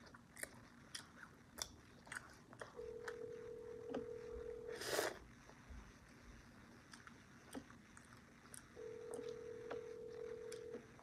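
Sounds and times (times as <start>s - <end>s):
telephone ringback tone: 2.8s - 4.8s, 8.8s - 11.0s.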